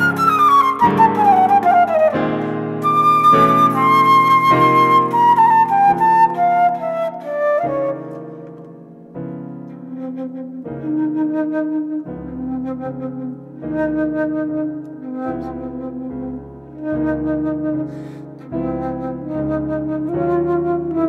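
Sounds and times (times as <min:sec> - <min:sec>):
flute holding long line: 0:00.0 - 0:21.0
piano chords: 0:00.0 - 0:21.0.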